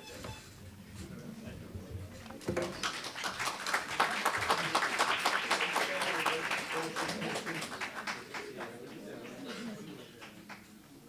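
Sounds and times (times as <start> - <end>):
audience applauding: 2.6 - 10.8.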